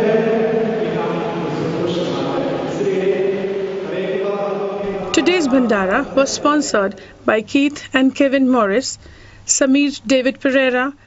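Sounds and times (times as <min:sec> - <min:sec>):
sung liturgical chant: 0:00.0 - 0:10.6.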